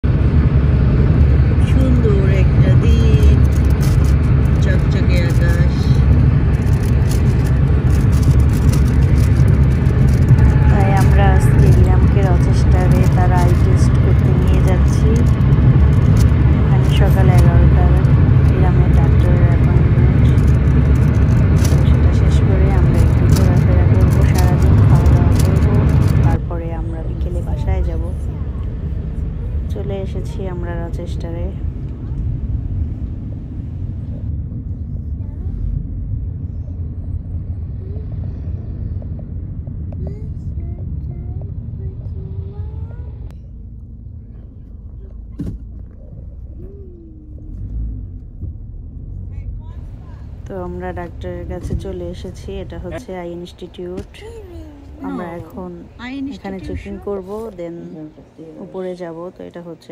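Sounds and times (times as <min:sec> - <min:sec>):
car road noise rumble: 0:00.0 - 0:59.9
people talking: 0:01.6 - 0:03.5, 0:04.5 - 0:06.1, 0:10.2 - 0:15.4, 0:16.0 - 0:32.3, 0:40.0 - 0:43.4, 0:49.3 - 0:59.9.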